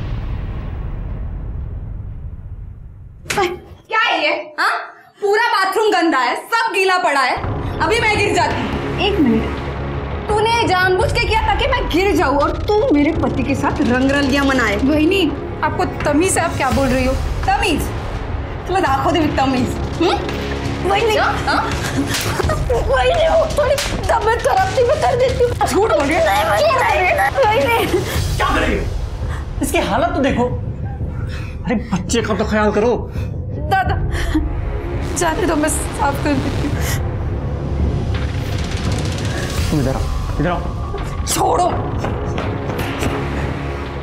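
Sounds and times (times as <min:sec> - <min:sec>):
low rumbling drone: 0:07.4 - 0:44.0
sharp slaps: 0:21.6 - 0:26.2.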